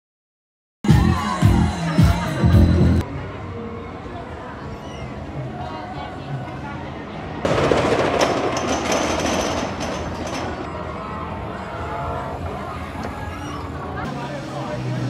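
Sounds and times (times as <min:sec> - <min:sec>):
park background noise: 0:00.9 - 0:15.0
distant voices: 0:03.0 - 0:15.0
roller coaster rumbling past: 0:04.1 - 0:14.9.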